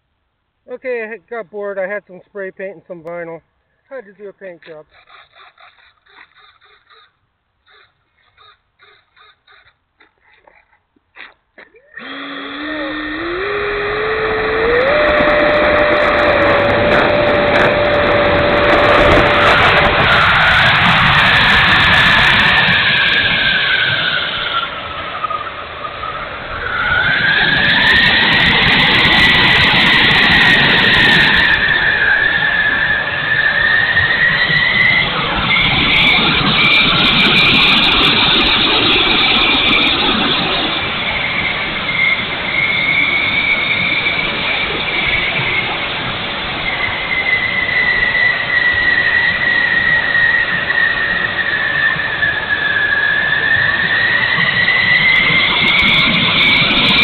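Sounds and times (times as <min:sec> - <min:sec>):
electric ducted fan whining: 0:11.9 - 0:57.0
rush of air: 0:12.0 - 0:42.4.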